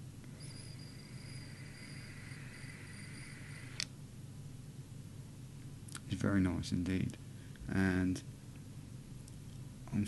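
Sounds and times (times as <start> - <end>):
vape whistling: 0.3 - 3.8.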